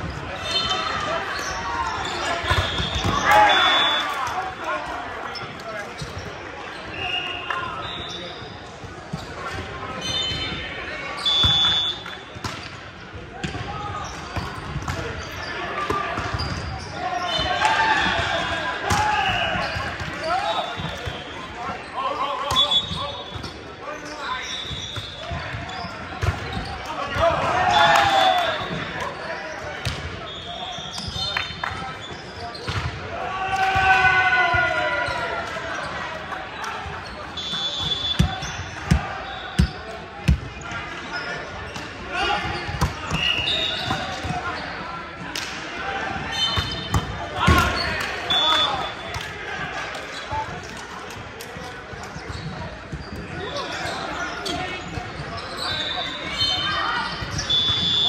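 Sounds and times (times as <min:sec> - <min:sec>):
players calling and shouting: 0:00.0 - 0:58.0
sneaker squeaks on hardwood floor: 0:00.1 - 0:04.0, 0:10.0 - 0:12.0, 0:16.2 - 0:17.6, 0:19.3 - 0:26.9, 0:28.6 - 0:32.9, 0:37.0 - 0:44.9, 0:46.3 - 0:49.2, 0:51.9 - 0:58.0.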